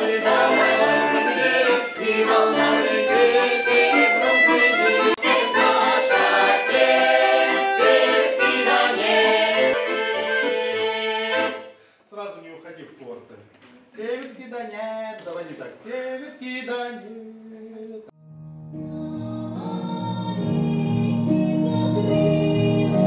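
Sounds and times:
women singing: 0.0 - 11.7, 19.0 - 23.0
accordion playing folk tune: 0.0 - 11.8
man's voice: 12.1 - 17.9.

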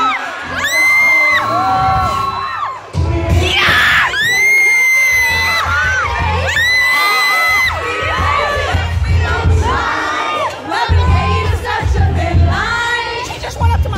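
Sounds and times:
fans screaming and cheering: 0.0 - 13.9
live pop music with bass beat: 0.0 - 13.9.

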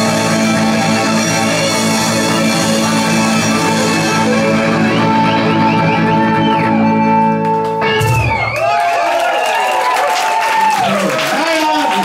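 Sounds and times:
band final chord: 0.0 - 8.4
audience clapping and cheering: 6.6 - 12.0.

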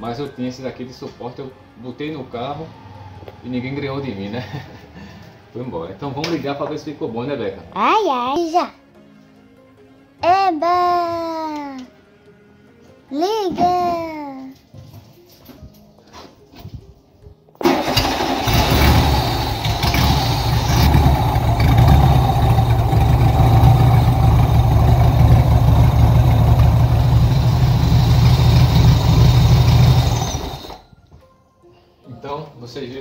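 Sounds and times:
car engine starting and running: 17.6 - 30.8.

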